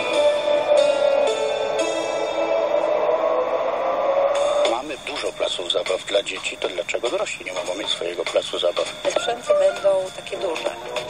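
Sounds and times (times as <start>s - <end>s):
radio jingle music: 0.0s - 11.0s.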